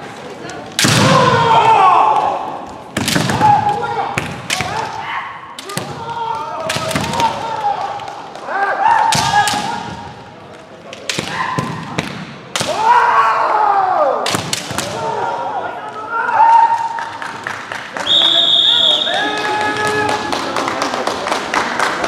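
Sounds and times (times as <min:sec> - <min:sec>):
fighters shouting: 0:01.0 - 0:02.6.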